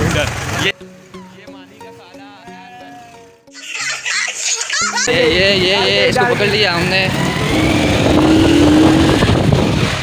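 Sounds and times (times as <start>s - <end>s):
small motorcycle engine running: 5.1s - 10.0s.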